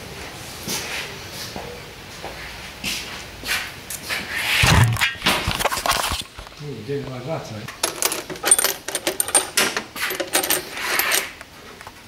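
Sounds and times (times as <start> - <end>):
man talking: 6.6 - 7.7.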